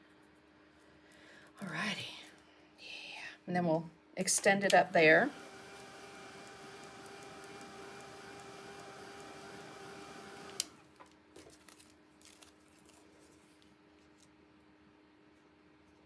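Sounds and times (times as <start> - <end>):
hair dryer whirring: 5.0 - 10.8.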